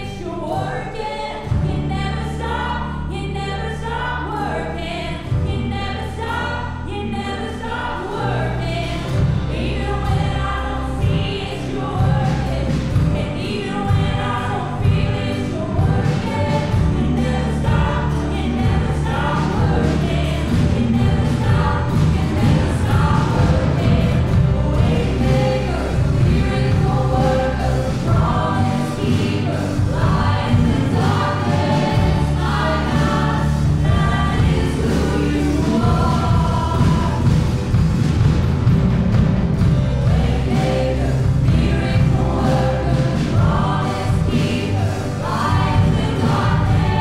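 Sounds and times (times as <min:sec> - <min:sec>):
woman singing lead: 0:00.0 - 0:37.7, 0:40.0 - 0:47.0
backing vocals: 0:00.0 - 0:38.0, 0:39.6 - 0:47.0
drums: 0:01.3 - 0:03.0, 0:05.2 - 0:06.6, 0:07.5 - 0:47.0
worship band playing: 0:06.3 - 0:47.0.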